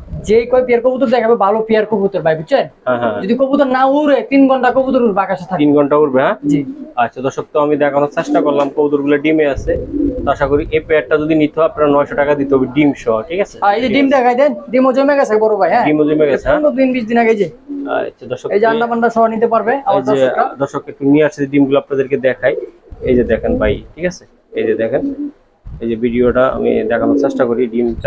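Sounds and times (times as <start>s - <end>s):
men's voices: 2.7s - 14.7s, 15.8s - 25.2s, 25.8s - 28.0s
pigeon cooing: 5.8s - 7.2s, 8.0s - 13.0s, 17.4s - 18.8s, 22.1s - 25.4s, 26.4s - 28.0s.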